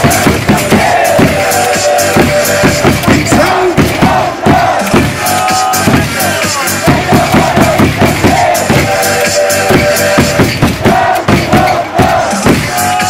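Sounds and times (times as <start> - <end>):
cheer music over loudspeakers: 0.0 - 13.0
crowd cheering: 0.0 - 13.0.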